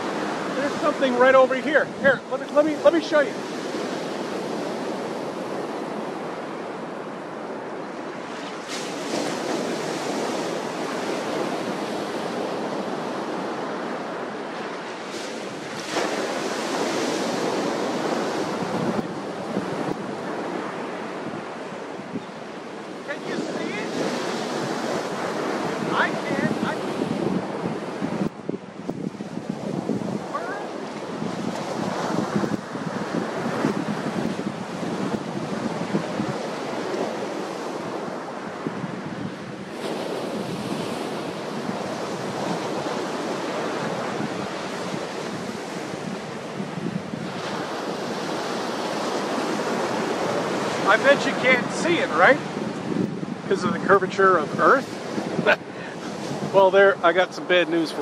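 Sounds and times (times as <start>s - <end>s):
surf breaking on beach: 0.0s - 58.0s
wind buffeting microphone: 0.0s - 58.0s.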